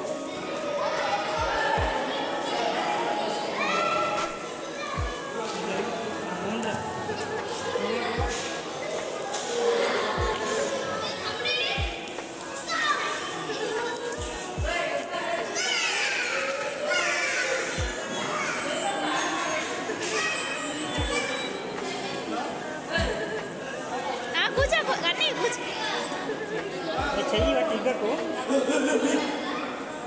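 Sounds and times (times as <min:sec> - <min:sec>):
children's voices in echoing hall: 0:00.0 - 0:30.0
people chattering: 0:00.0 - 0:30.0.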